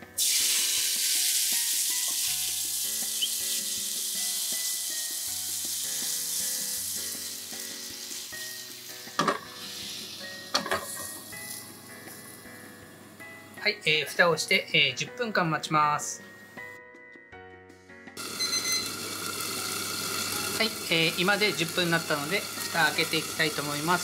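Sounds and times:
water sizzling in a hot pan: 0.0 - 12.4, 18.2 - 24.0.

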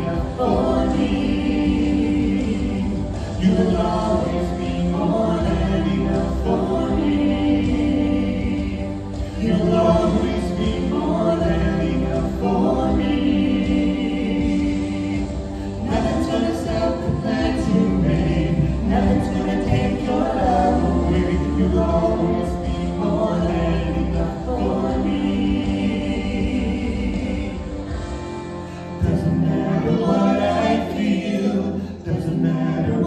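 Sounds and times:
vocal trio singing in harmony: 0.0 - 33.0.

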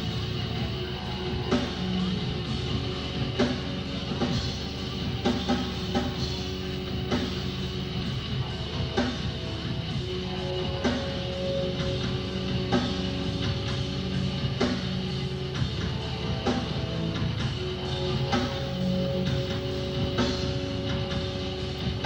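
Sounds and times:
drums slow steady beat: 0.0 - 22.0.

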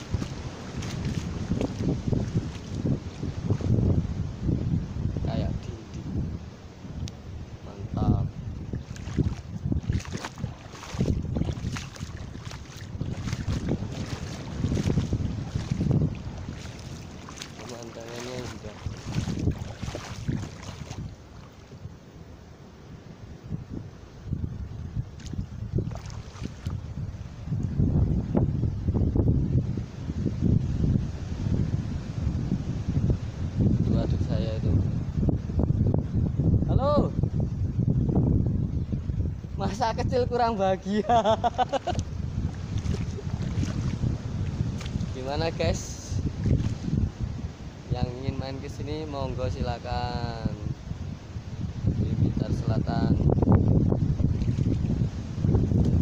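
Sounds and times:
wind buffeting microphone: 0.0 - 56.0
sea surf: 10.2 - 23.1.

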